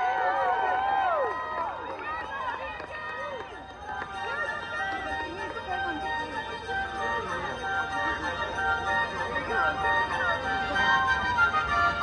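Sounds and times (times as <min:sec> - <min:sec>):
crowd cheering: 0:00.0 - 0:05.8
crowd talking and calling out: 0:00.0 - 0:12.0.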